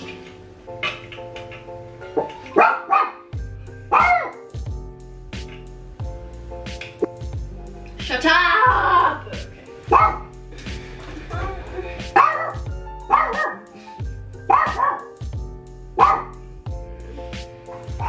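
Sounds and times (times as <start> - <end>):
background music: 0.0 - 18.0
small dog barking: 2.2 - 3.2, 3.9 - 4.4, 9.9 - 10.3, 12.2 - 13.6, 14.5 - 15.2, 16.0 - 16.4.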